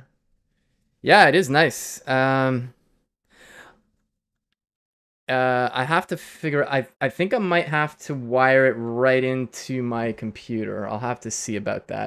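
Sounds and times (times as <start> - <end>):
person breathing faintly: 3.3 - 3.8.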